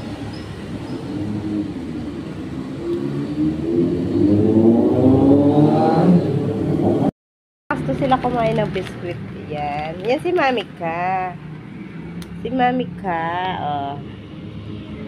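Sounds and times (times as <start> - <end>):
vehicle engine humming and revving: 0.0 - 7.1, 7.7 - 15.0.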